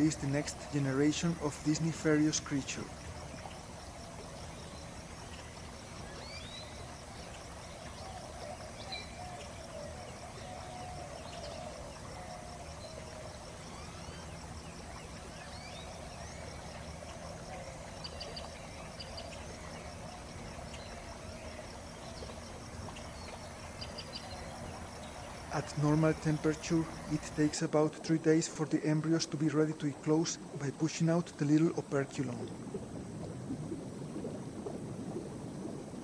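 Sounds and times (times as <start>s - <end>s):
steady background hiss: 0.0s - 36.0s.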